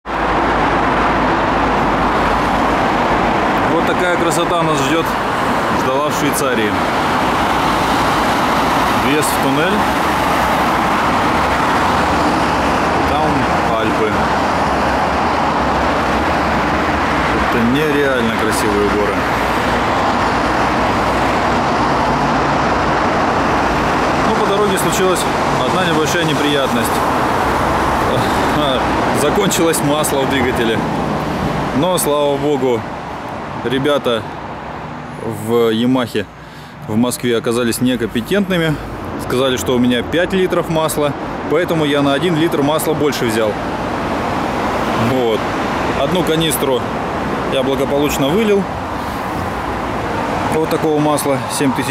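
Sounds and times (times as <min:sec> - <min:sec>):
loud steady rushing noise: 0:00.0 - 0:51.9.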